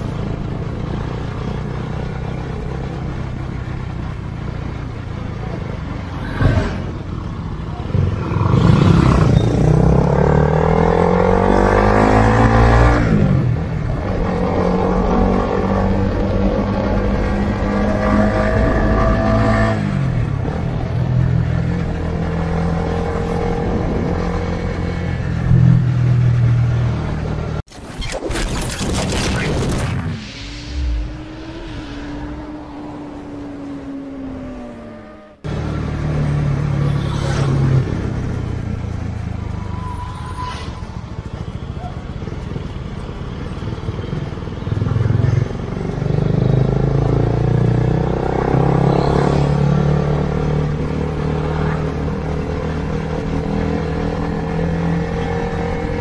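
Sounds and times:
road and wind noise: 0:00.0 - 0:56.0
motorcycle engine revving: 0:07.7 - 0:27.6.

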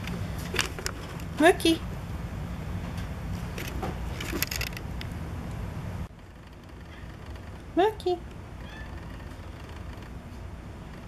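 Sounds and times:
cat meowing: 0:08.6 - 0:09.4.

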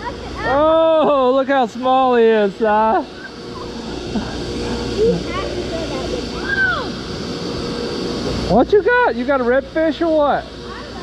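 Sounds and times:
crane working: 0:00.0 - 0:11.0
droning hum: 0:00.0 - 0:11.0.

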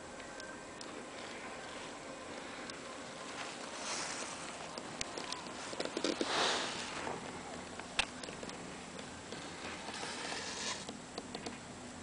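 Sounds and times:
person sniffing: 0:06.2 - 0:07.2.

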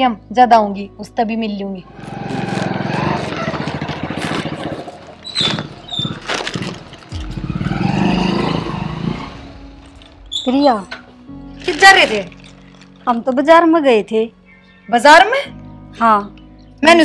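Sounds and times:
motorcycle engine revving: 0:01.9 - 0:10.1.

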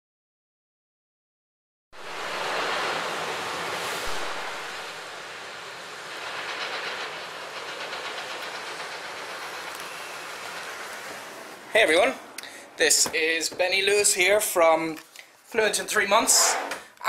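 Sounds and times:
traffic rushing: 0:02.0 - 0:13.4.

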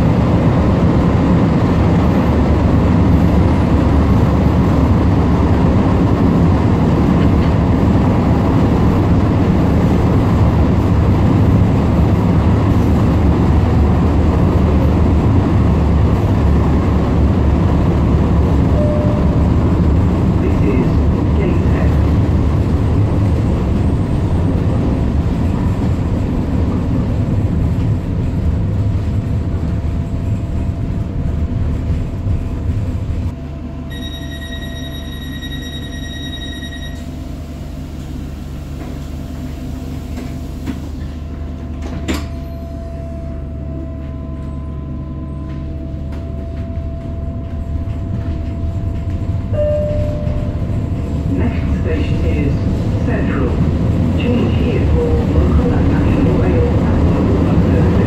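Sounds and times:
train wheels rumbling: 0:00.0 - 0:58.0.

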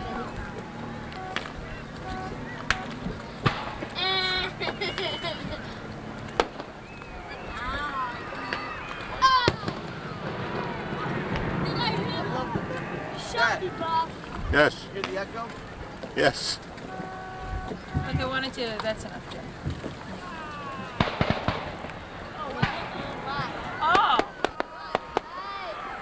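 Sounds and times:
people's voices: 0:00.0 - 0:26.0
faint firework pops: 0:01.2 - 0:04.0, 0:09.4 - 0:11.7, 0:20.9 - 0:25.3
firework bang: 0:02.7 - 0:04.0, 0:09.4 - 0:13.3, 0:20.9 - 0:25.4.

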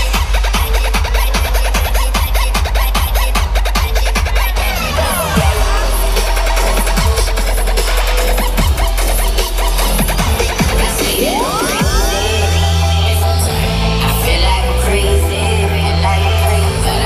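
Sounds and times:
bass-heavy electronic dance music: 0:00.0 - 0:17.0.

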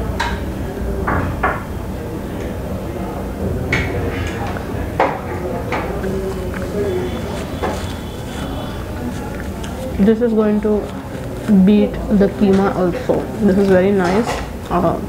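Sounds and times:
faint indistinct voices: 0:00.0 - 0:15.0
steady low hum: 0:00.0 - 0:15.0.

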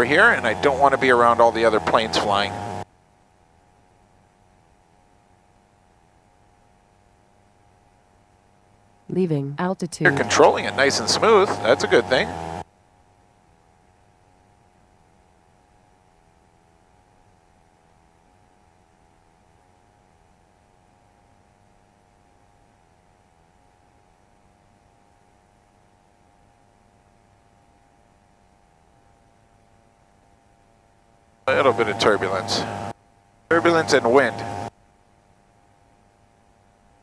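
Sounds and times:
faint steady tones: 0:00.0 - 0:37.0.

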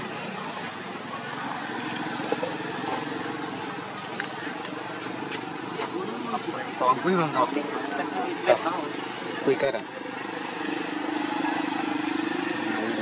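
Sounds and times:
distant voices talking: 0:00.0 - 0:13.0
outdoor background noise: 0:00.0 - 0:13.0.

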